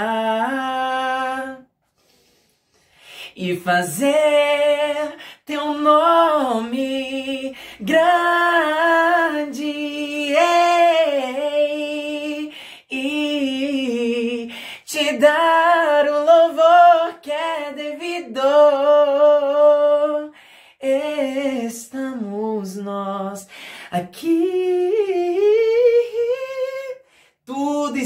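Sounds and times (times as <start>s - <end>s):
man singing unaccompanied: 0.0s - 1.7s, 3.3s - 28.0s.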